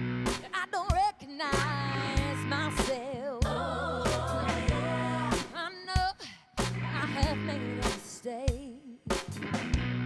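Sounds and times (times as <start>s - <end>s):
live band playing: 0.0s - 0.6s, 1.6s - 5.6s
woman singing: 0.4s - 9.1s.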